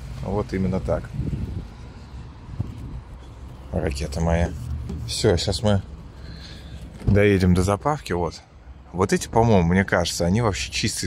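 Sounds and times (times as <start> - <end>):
wind rumble on microphone: 0.8 - 3.3.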